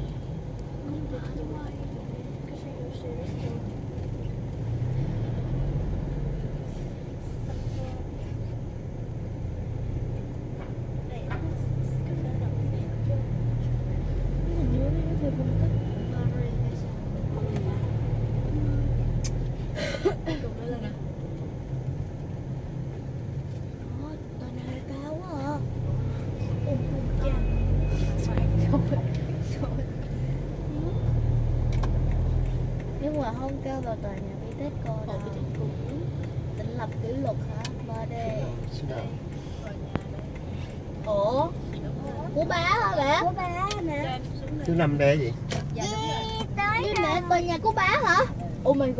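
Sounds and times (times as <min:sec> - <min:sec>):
car engine and road rumble: 0:00.0 - 0:48.9.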